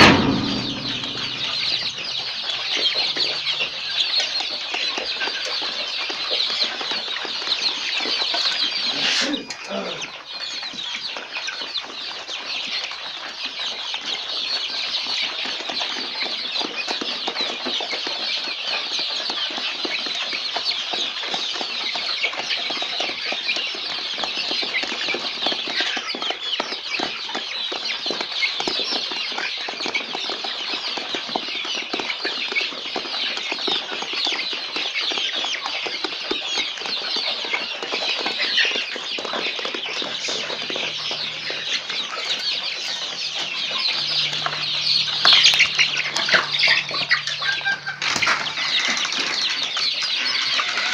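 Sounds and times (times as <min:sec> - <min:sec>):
chicks cheeping: 0:00.0 - 0:50.9.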